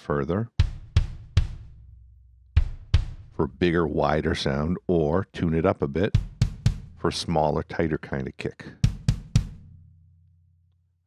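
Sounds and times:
kick drum hits: 0:00.6 - 0:02.0, 0:02.6 - 0:03.4, 0:06.2 - 0:07.0, 0:08.8 - 0:09.9.

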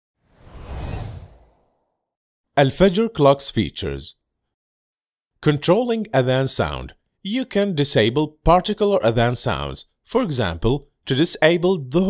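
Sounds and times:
swoosh sound effect: 0:00.2 - 0:02.0.

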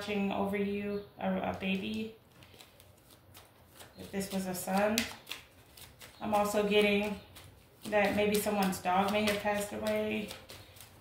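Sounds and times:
cards clicking and rustling: 0:01.8 - 0:11.0.

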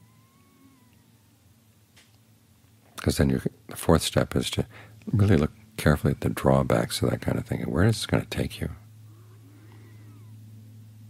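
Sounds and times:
faint gliding animal calls: 0:00.0 - 0:01.6, 0:09.0 - 0:10.9
steady low hum: 0:00.0 - 0:11.0.

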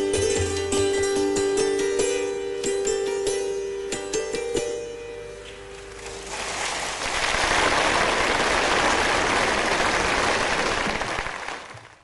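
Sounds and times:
santoor note: 0:00.0 - 0:06.3
audience applauding: 0:06.3 - 0:12.0.

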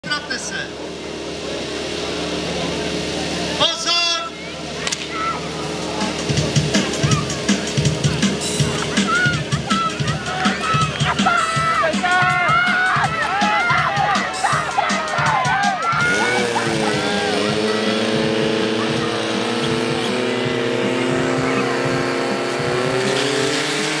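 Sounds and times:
pump engine revving: 0:00.0 - 0:24.0
spectators shouting and cheering: 0:00.0 - 0:24.0.

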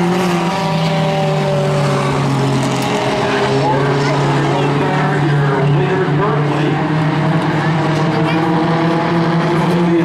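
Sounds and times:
race car engines: 0:00.0 - 0:10.0.

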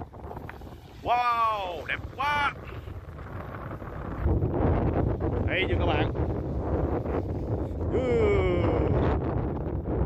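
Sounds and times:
small waves washing on sand: 0:00.0 - 0:07.8
wind buffeting microphone: 0:00.0 - 0:10.0.

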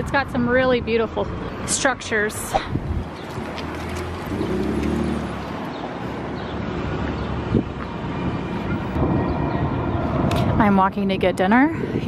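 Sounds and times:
rumble of street traffic: 0:00.0 - 0:12.0
passing engine hum: 0:02.8 - 0:10.7.

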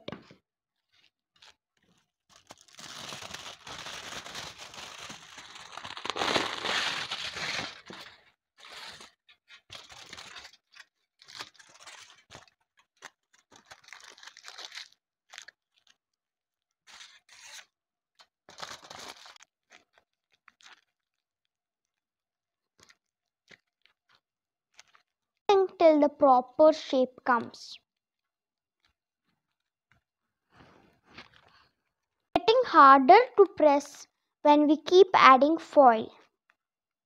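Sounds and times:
aluminium foil crinkling: 0:00.9 - 0:16.0, 0:18.2 - 0:21.2, 0:22.8 - 0:25.1.

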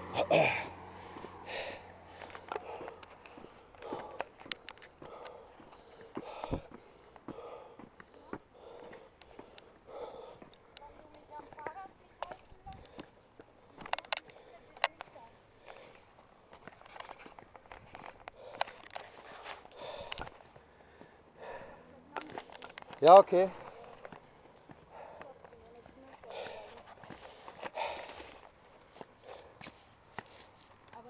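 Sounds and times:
person breathing: 0:00.2 - 0:11.8, 0:12.6 - 0:30.7.

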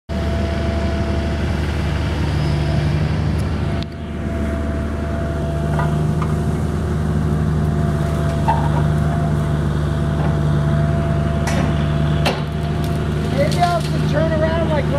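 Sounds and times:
excavator diesel engine running: 0:00.1 - 0:14.9.

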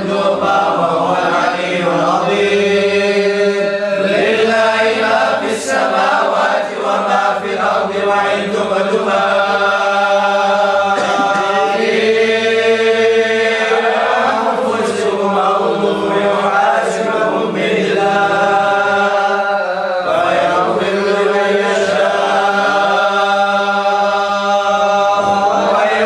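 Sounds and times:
group of voices chanting: 0:00.0 - 0:26.0.

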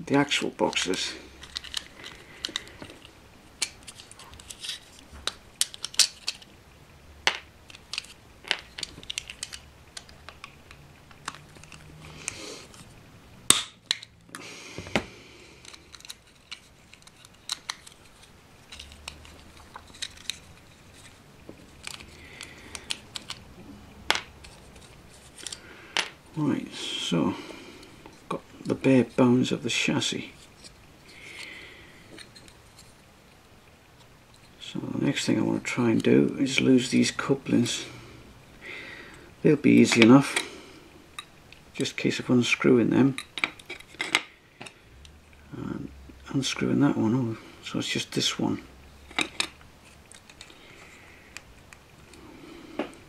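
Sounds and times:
plastic parts clicking: 0:00.7 - 0:06.5, 0:07.2 - 0:12.9, 0:13.5 - 0:15.0, 0:15.6 - 0:23.4, 0:24.1 - 0:26.2, 0:49.1 - 0:51.8.

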